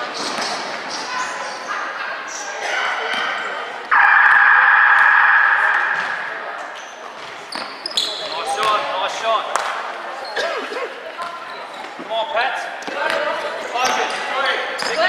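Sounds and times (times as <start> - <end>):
sneakers squeaking: 5.7 - 8.7.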